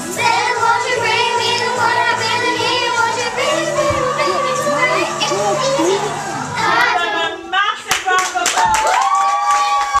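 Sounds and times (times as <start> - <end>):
hand clapping: 7.9 - 10.0.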